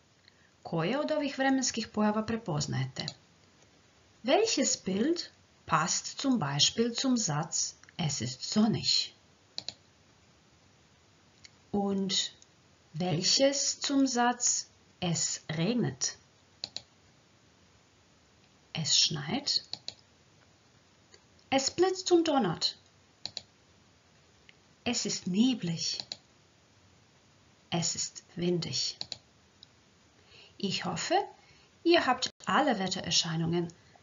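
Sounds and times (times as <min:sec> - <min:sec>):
woman speaking: 0:00.6 - 0:03.2, 0:04.2 - 0:09.2, 0:11.8 - 0:12.4, 0:13.0 - 0:16.2, 0:18.8 - 0:19.7, 0:21.5 - 0:22.8, 0:24.9 - 0:26.1, 0:27.7 - 0:29.0, 0:30.6 - 0:33.8
sharp clicks: 0:09.6 - 0:09.8, 0:16.6 - 0:16.9, 0:19.6 - 0:20.1, 0:23.2 - 0:23.5, 0:26.0 - 0:26.3, 0:29.0 - 0:29.7.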